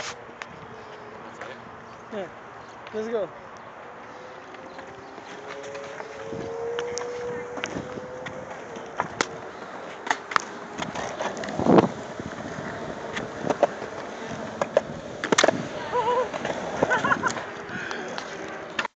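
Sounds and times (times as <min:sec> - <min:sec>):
skateboard wheels rolling on concrete: 0:00.0 - 0:18.9.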